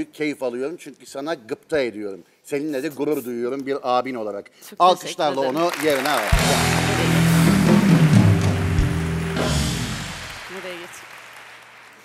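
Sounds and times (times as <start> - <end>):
audience applause: 5.4 - 12.0
live band playing music cue: 6.2 - 10.9.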